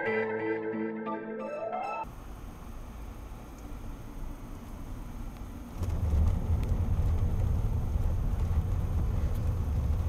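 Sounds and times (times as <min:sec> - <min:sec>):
car engine and road noise: 0:02.0 - 0:10.0.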